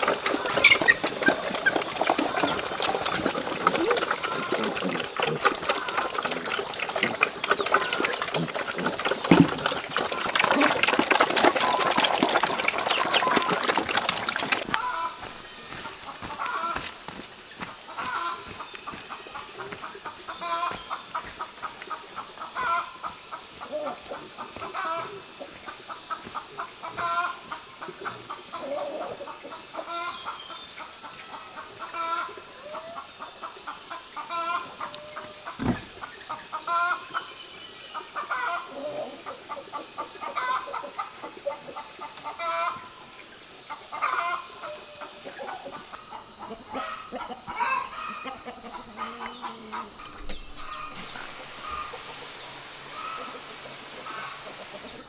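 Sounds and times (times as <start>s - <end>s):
pigs feeding at a trough: 0.0s - 25.4s, 45.3s - 55.0s
chickens clucking: 0.0s - 55.0s
steady high-pitched hiss: 14.2s - 55.0s.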